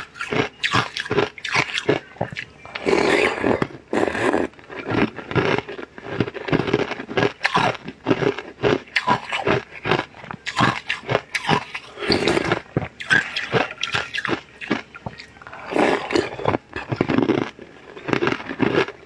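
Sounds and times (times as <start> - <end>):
chewing jelly with crunching: 0.0 - 19.0
slurping from a spoon: 1.4 - 4.9, 11.8 - 14.4, 15.0 - 17.1.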